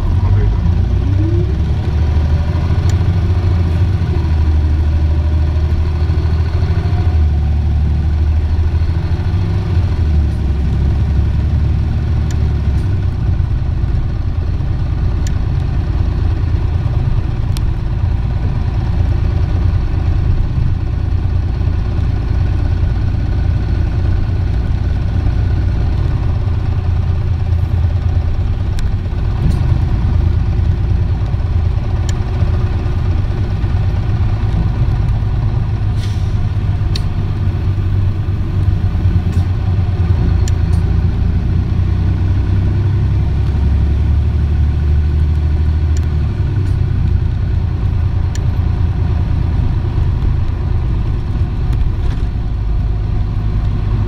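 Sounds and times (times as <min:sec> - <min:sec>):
bus diesel engine running: 0:00.0 - 0:54.0.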